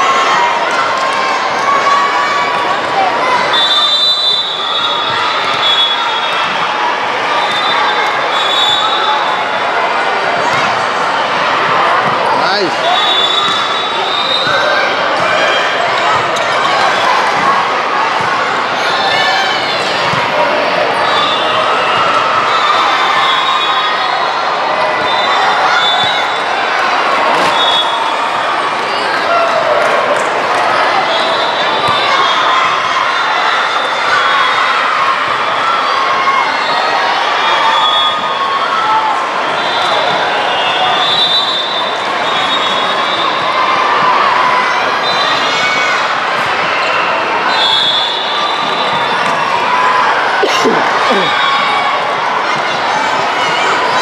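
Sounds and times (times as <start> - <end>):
voices chattering and calling: 46.9 - 54.0.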